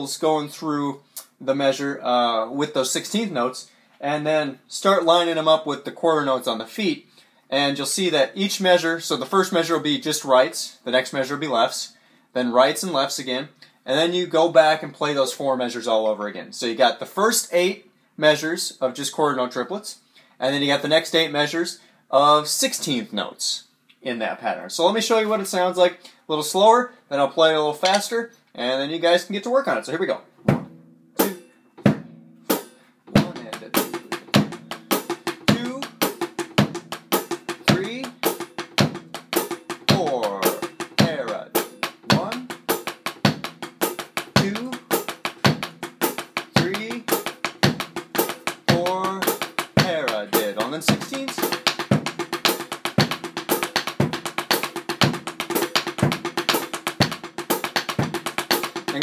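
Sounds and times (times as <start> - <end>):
bass drum: 30.4 - 59.0
snare drum sticking: 30.4 - 59.0.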